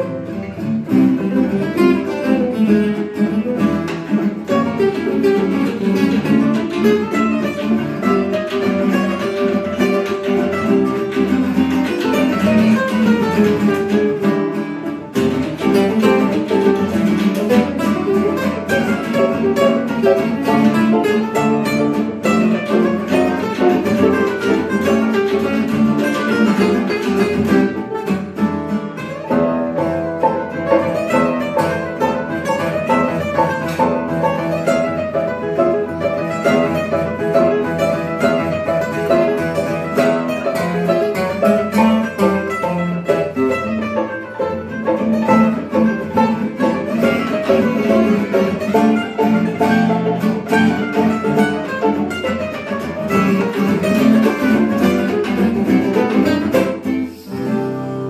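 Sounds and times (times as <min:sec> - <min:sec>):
plucked and strummed guitars: 0:00.0 - 0:58.0.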